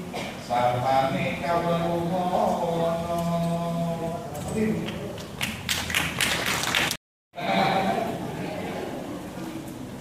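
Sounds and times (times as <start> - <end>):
audience clapping: 4.9 - 7.0.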